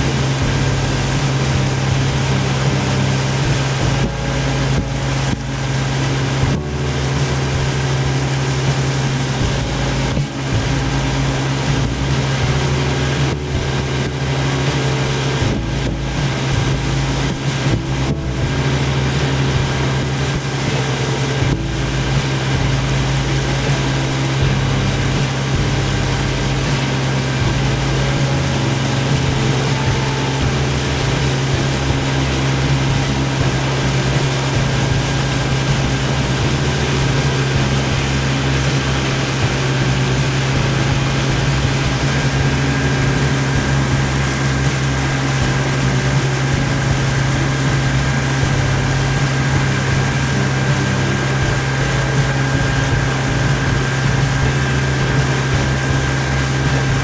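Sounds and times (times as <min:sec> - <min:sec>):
motorboat engine droning: 0:00.0 - 0:57.0
water and wind noise: 0:00.0 - 0:57.0.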